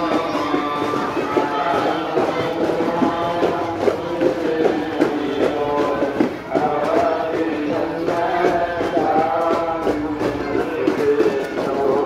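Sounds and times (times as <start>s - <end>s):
person singing devotional song: 0.0s - 12.0s
walking crowd talking: 0.0s - 12.0s.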